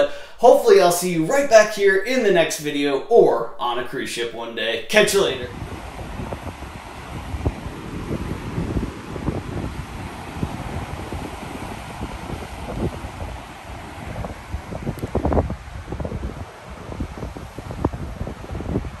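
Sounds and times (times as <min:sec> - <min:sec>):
sea rushing along ship hull: 0:05.0 - 0:19.0
wind buffeting microphone: 0:05.4 - 0:19.0.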